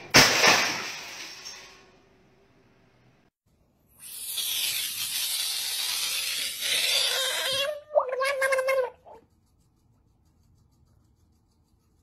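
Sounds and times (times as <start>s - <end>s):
frog wailing scream: 6.6s - 9.2s.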